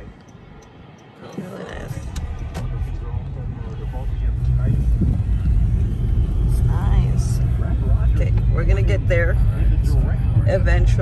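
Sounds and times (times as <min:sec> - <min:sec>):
car road noise inside cabin: 0:00.0 - 0:11.0.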